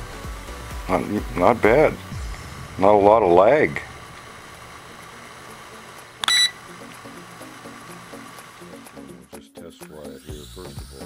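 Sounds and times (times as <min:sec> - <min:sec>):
steady hiss: 0:00.0 - 0:09.3
faint background music: 0:00.0 - 0:11.0
loud electronic beep: 0:06.2 - 0:06.6.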